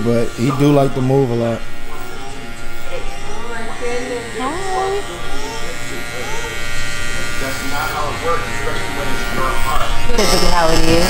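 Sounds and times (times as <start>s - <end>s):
electric hair clippers buzzing: 0.0s - 11.0s.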